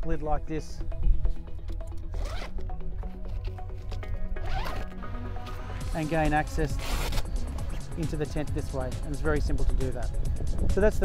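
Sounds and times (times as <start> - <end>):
background music: 0.0 - 11.0
zipper on canvas pulled: 2.1 - 2.6, 4.4 - 5.0, 6.6 - 7.3.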